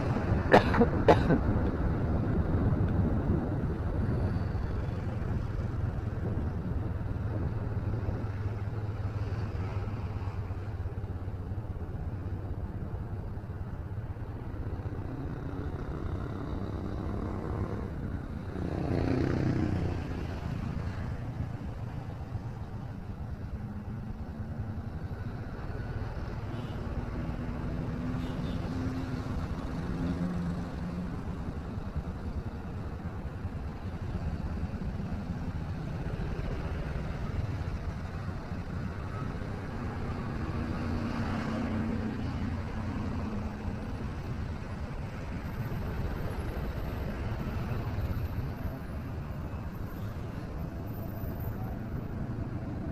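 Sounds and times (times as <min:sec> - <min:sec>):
road noise: 0:00.0 - 0:52.9.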